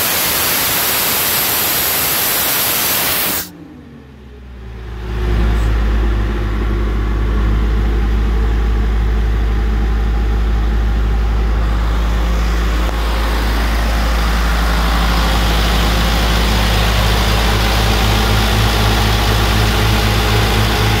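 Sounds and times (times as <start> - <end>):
air compressor diesel engine running: 0.0 - 3.6, 5.4 - 21.0.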